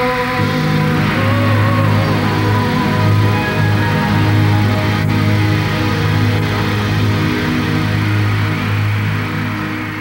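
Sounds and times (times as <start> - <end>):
live band sustained chord: 0.0 - 10.0.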